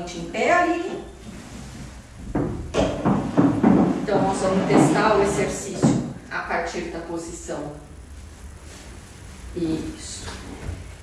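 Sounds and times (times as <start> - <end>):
wooden chair scraping on floor: 1.1 - 6.2
footsteps: 1.2 - 6.2.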